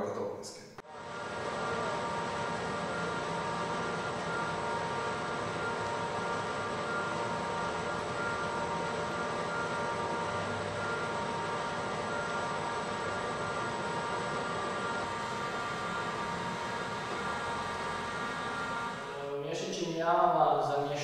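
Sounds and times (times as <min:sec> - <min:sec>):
machinery hum: 0:00.0 - 0:21.0.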